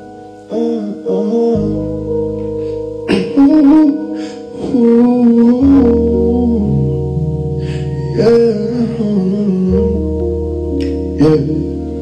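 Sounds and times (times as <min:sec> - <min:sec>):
keyboard chords with bass: 0:00.0 - 0:12.0
man singing wordless melody: 0:00.4 - 0:02.3, 0:03.1 - 0:12.0.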